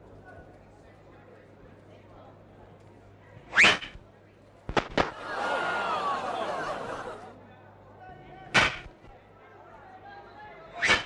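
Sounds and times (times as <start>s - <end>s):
cartoon swish: 3.5s - 4.0s, 10.8s - 11.0s.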